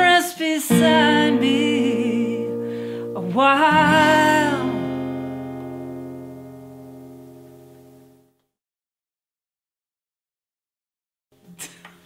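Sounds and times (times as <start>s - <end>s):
woman singing: 0.0s - 5.2s
acoustic guitar chord: 0.7s - 8.3s.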